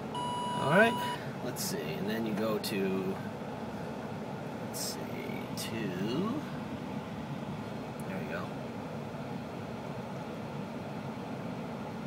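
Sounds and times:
engine idling hum in car cabin: 0.0s - 12.0s.

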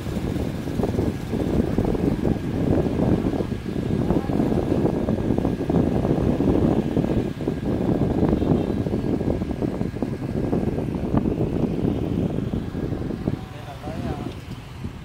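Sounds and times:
motorbike engines in traffic: 0.0s - 15.0s
wind buffeting microphone: 0.0s - 15.0s.

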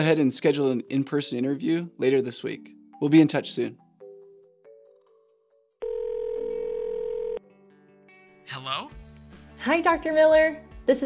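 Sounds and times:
telephone ringback tone: 5.8s - 7.4s.

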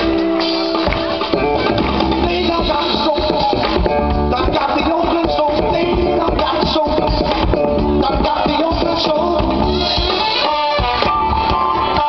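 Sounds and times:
big band playing soul-funk: 0.0s - 12.0s.

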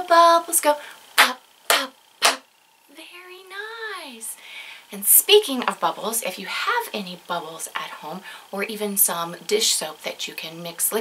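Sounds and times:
woman making popping sound: 1.2s - 2.4s.

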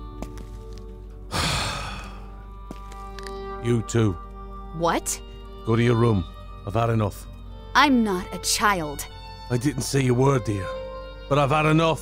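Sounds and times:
quiet background music: 0.0s - 12.0s
heavy sigh: 1.3s - 2.3s.

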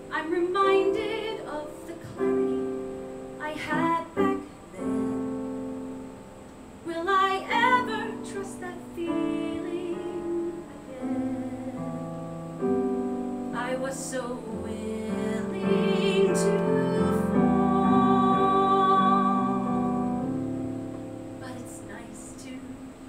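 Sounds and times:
woman singing with vibrato: 0.0s - 5.8s, 6.8s - 12.1s, 13.5s - 20.4s, 21.4s - 22.9s
piano accompaniment: 0.0s - 23.0s.

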